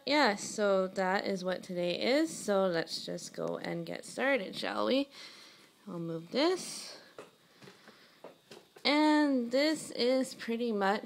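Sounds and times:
woman talking: 0.0s - 5.2s, 5.8s - 7.1s, 8.8s - 11.0s.

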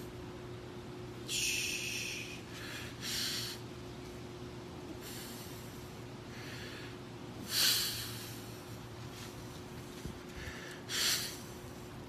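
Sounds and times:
low steady hum: 0.0s - 12.0s
man breathing forcefully: 1.2s - 3.7s, 4.9s - 8.9s, 10.2s - 12.0s.

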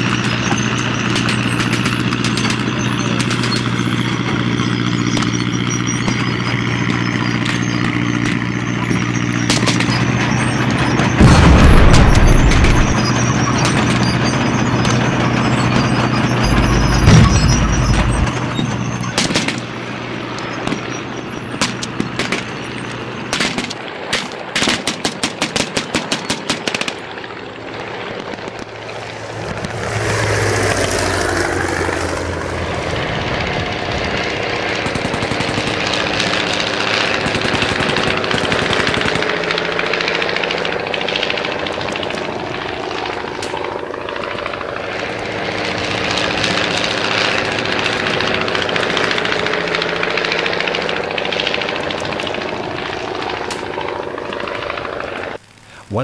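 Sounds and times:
low-flying propeller planes: 0.0s - 56.0s
machine-gun fire: 11.2s - 14.1s, 16.4s - 19.7s, 23.3s - 27.1s, 34.4s - 55.2s.

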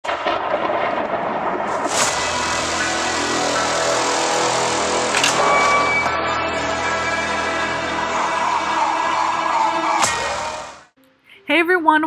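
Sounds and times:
dense rushing noise: 0.0s - 10.9s
whooshing swells: 1.5s - 10.9s
sustained musical tones: 1.9s - 11.4s.

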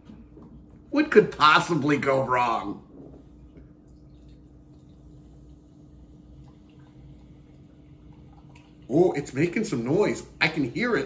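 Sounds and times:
beer fizzing: 0.0s - 11.0s
liquid trickling into a glass: 2.9s - 10.5s.

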